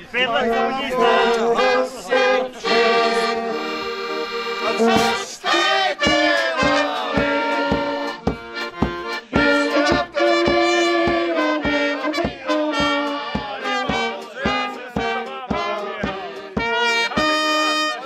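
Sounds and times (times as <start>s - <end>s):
brass band playing: 0.4s - 18.0s
steady drum beat: 4.0s - 16.8s.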